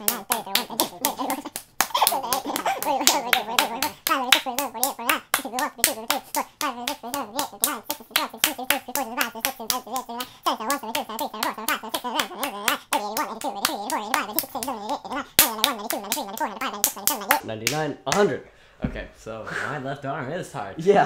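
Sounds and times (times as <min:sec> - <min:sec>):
palms slapping together: 0:00.0 - 0:18.3.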